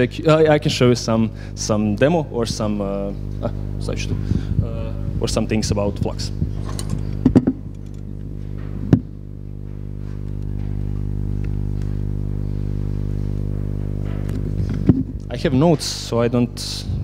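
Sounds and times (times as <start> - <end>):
buzzy electrical hum: 0.0 - 17.0.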